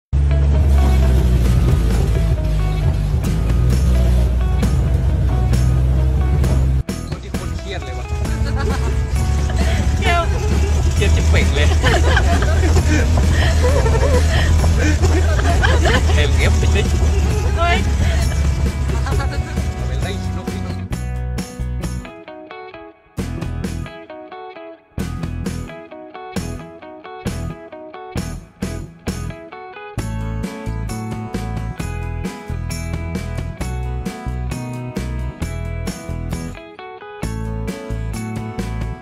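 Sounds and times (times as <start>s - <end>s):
vehicle engine rumbling: 0.1s - 22.0s
music with heavy bass: 0.2s - 22.2s, 23.2s - 24.1s, 25.0s - 39.0s
people talking and laughing: 7.1s - 20.9s.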